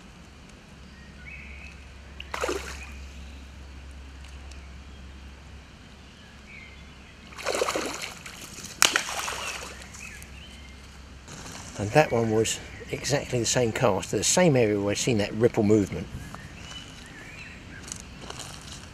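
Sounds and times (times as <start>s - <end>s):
fish splashing at water surface: 2.2s - 3.0s, 7.3s - 9.9s.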